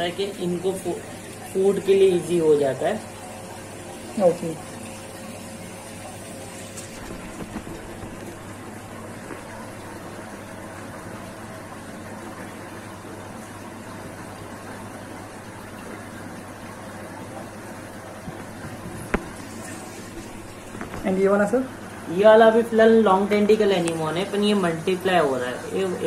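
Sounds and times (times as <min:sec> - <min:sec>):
aquarium pumps humming: 0:00.0 - 0:26.0
running water: 0:00.0 - 0:26.0.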